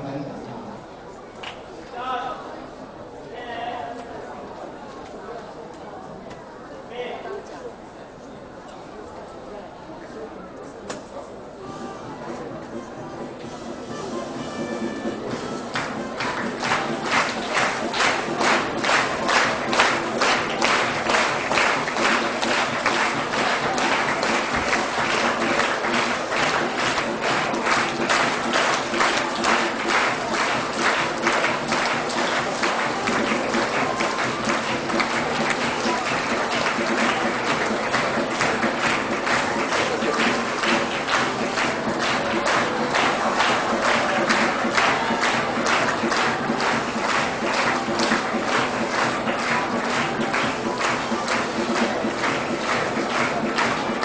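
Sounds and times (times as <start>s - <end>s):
background music: 11.5s - 54.0s
audience clapping: 14.5s - 54.0s.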